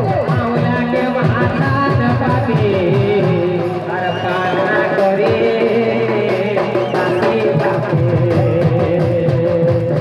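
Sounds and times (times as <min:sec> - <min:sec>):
steady drumming: 0:00.0 - 0:10.0.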